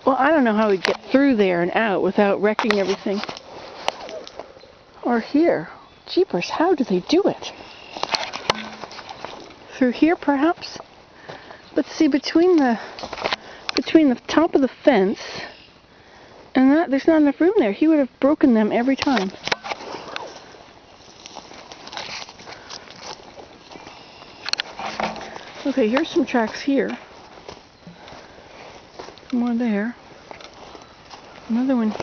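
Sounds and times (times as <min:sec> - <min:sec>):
twigs and branches rustling: 0:00.0 - 0:32.0
faint handling noise: 0:02.2 - 0:04.6, 0:06.3 - 0:14.5, 0:18.8 - 0:32.0
footsteps through dry leaves: 0:02.7 - 0:04.5, 0:19.3 - 0:32.0.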